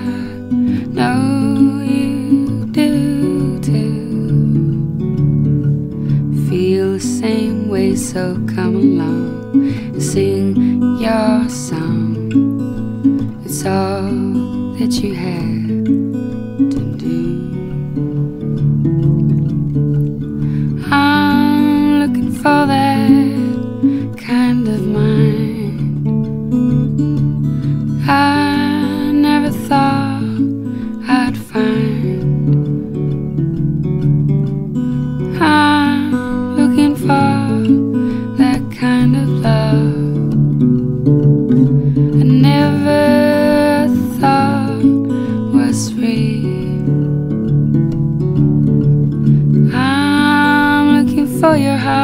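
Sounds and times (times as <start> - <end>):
woman singing: 0.0 - 18.3, 20.4 - 26.8, 27.5 - 33.1, 34.8 - 40.8, 41.6 - 47.3, 49.3 - 52.0
acoustic guitar picking: 0.0 - 52.0.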